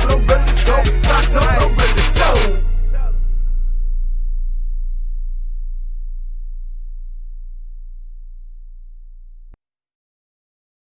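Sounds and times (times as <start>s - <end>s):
deep bass note: 1.0s - 9.6s.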